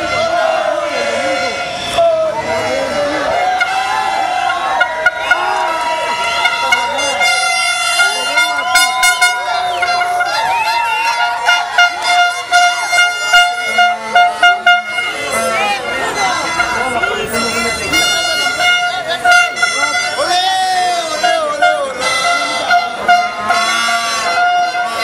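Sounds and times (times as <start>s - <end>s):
crowd shouting: 0.0s - 25.0s
plastic fan horns blowing: 2.9s - 25.0s.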